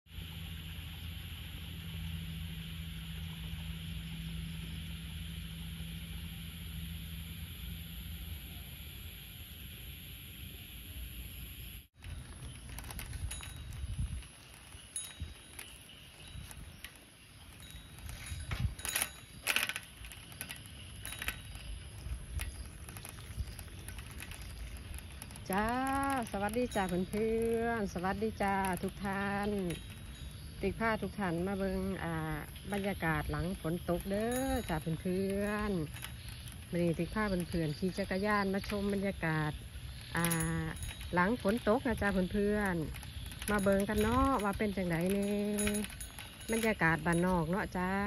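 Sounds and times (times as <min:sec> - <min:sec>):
bicycle on wet road: 0:00.1 - 0:08.4, 0:11.9 - 0:48.0
bicycle basket rattling: 0:12.0 - 0:48.0.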